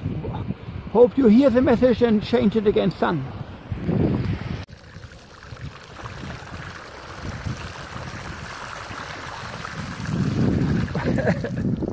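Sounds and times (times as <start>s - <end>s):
wind buffeting microphone: 0.0s - 4.7s, 5.4s - 11.9s
bicycle tyres hissing through water: 4.6s - 11.9s.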